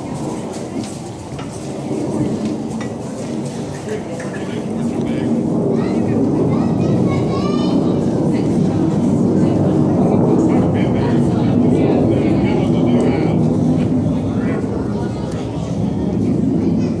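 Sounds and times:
faint indistinct voices: 0:00.0 - 0:17.0
indoor arena rumble: 0:00.0 - 0:17.0.

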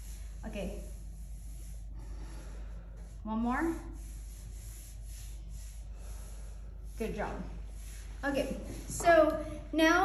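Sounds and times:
low room hum: 0:00.0 - 0:10.0
person breathing through nose: 0:01.6 - 0:03.2, 0:05.0 - 0:07.0.

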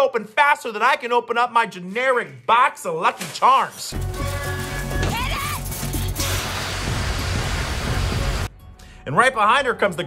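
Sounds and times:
person shouting: 0:04.1 - 0:05.6
fire extinguisher hissing: 0:05.7 - 0:08.5.

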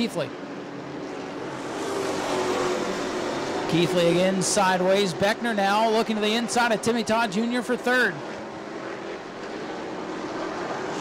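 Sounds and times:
stock car engines racing: 0:00.0 - 0:11.0.

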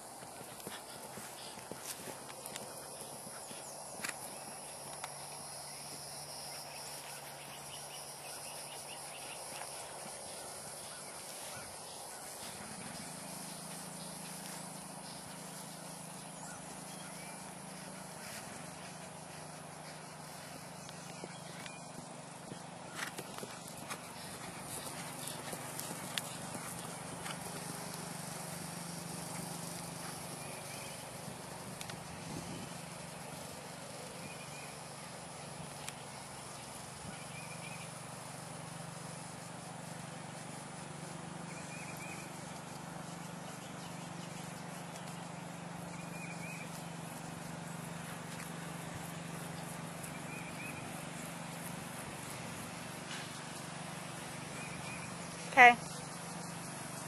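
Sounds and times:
outdoor noise: 0:00.0 - 0:57.0
soft hoofbeats on grass: 0:00.0 - 0:57.0.

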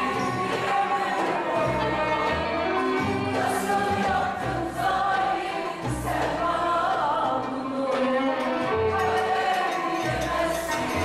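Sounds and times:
classical ensemble playing instrumental: 0:00.0 - 0:05.0
bowed strings melody: 0:00.0 - 0:11.0.

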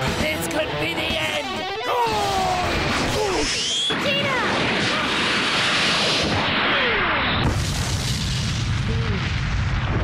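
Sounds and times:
rushing blast with falling whine: 0:02.1 - 0:10.0
deep rumbling boom: 0:04.5 - 0:10.0.

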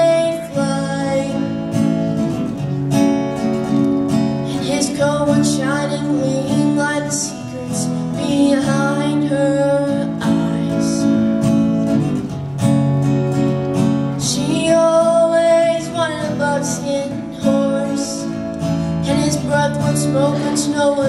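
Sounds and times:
young woman singing a ballad: 0:00.0 - 0:01.8, 0:04.4 - 0:11.4, 0:14.2 - 0:21.0
acoustic guitar strumming: 0:00.0 - 0:21.0.

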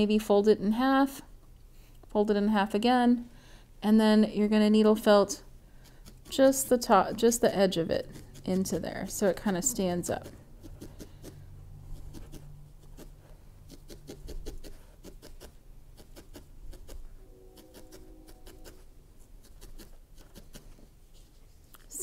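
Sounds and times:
felting needle poking wool: 0:05.8 - 0:18.8, 0:19.4 - 0:20.9.

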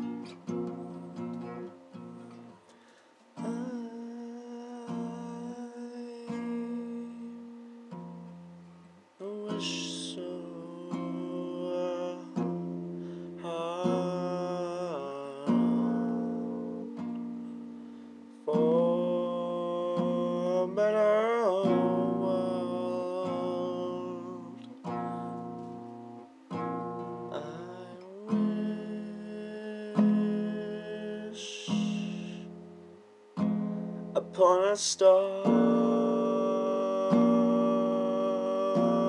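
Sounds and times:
acoustic guitar chords ringing: 0:00.0 - 0:39.0.

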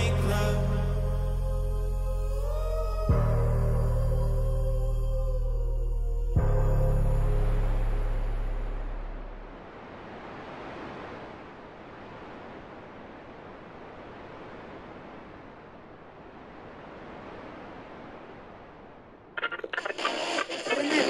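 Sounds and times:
wind-like rushing noise: 0:08.8 - 0:21.0.

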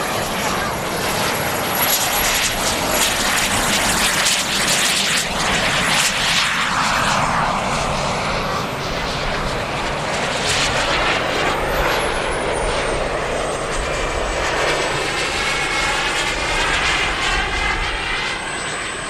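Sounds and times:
model jet engine flying past: 0:00.0 - 0:19.0.

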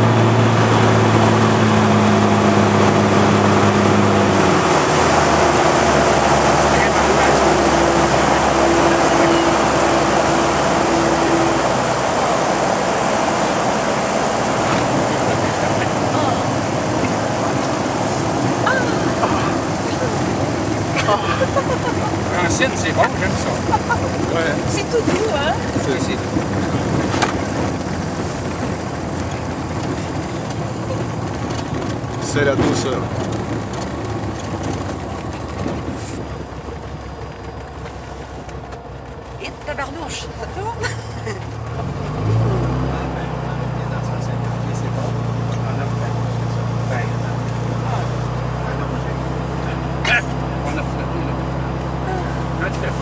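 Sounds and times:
light aircraft engine and airflow: 0:00.0 - 0:53.0.

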